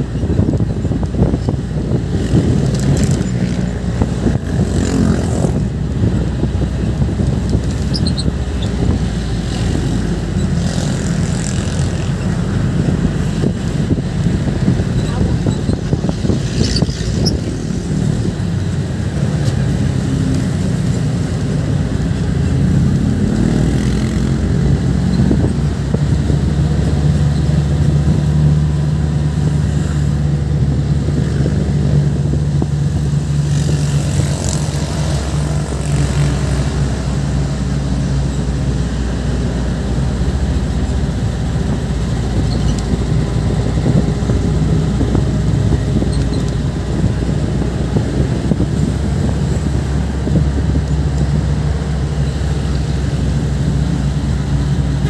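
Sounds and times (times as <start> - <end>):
vehicle engine running: 0.0 - 55.0
wind and road noise: 0.0 - 55.0.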